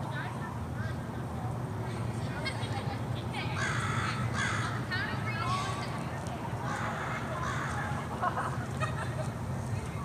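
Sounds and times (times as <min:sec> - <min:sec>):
harsh raspy bird calls: 0:03.6 - 0:04.8.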